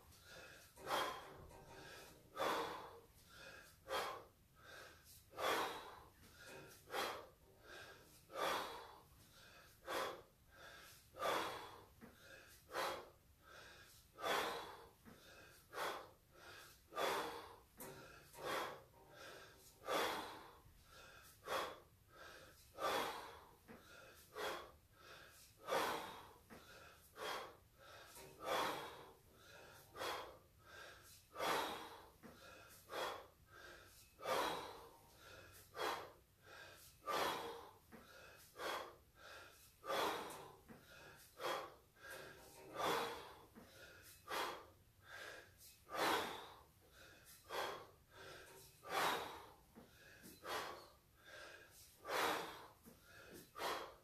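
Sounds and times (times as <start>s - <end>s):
man breathing hard: 0.0s - 54.0s.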